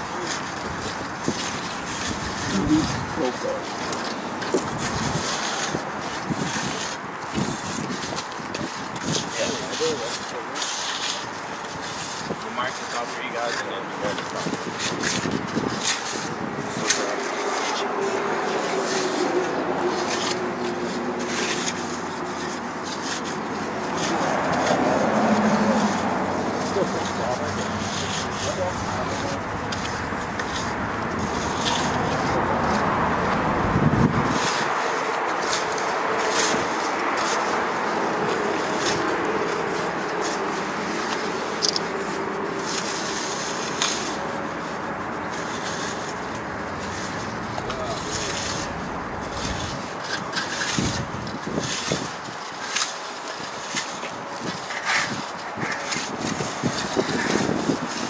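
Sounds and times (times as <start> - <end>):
trowel scraping wet concrete: 0.0 - 58.0.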